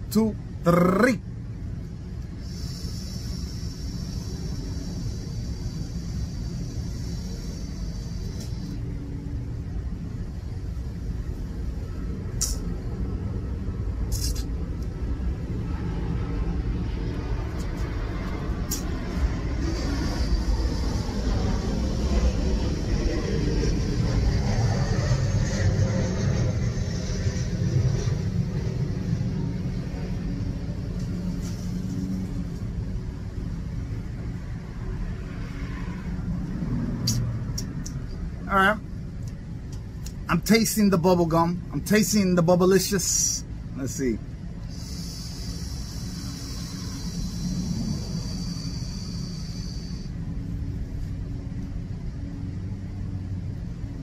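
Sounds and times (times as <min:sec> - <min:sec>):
low outdoor rumble: 0:00.0 - 0:54.0
faint airy vape hiss: 0:01.8 - 0:13.2, 0:17.1 - 0:22.4, 0:30.8 - 0:32.8, 0:40.0 - 0:51.2
short clicks: 0:37.0 - 0:38.0.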